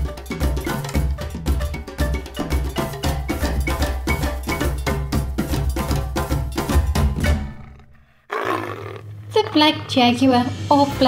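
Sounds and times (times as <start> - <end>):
percussive background music: 0.0 - 7.7
big cat roaring: 7.3 - 10.3.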